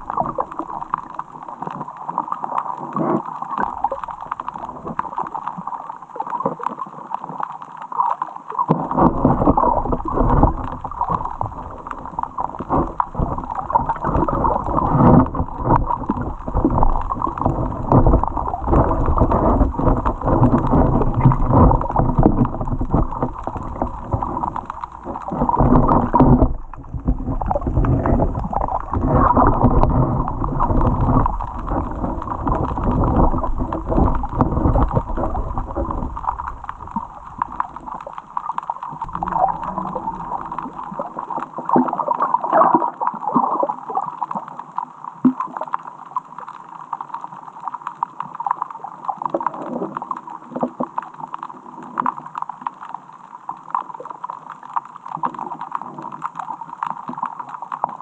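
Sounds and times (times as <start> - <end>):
underwater water rumble: 0.0 - 58.0.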